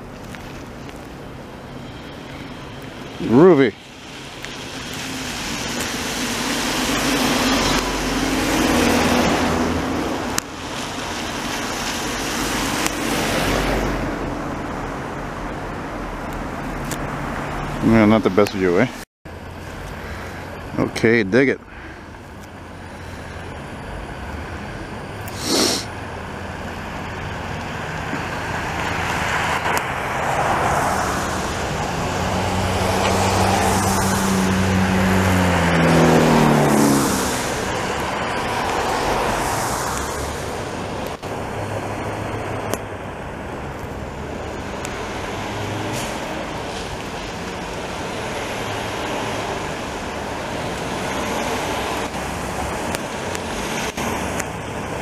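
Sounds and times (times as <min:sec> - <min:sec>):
passing traffic: 0:00.0 - 0:55.0
engine revving: 0:05.2 - 0:10.2, 0:27.4 - 0:39.5
short sharp hiss: 0:25.3 - 0:25.9
snow blower rushing: 0:25.3 - 0:25.9.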